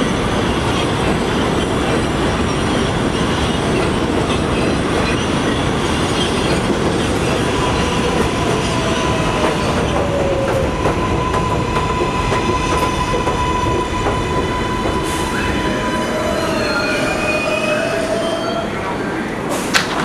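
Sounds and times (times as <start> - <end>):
train wheels rumbling on rail: 0.0 - 20.0.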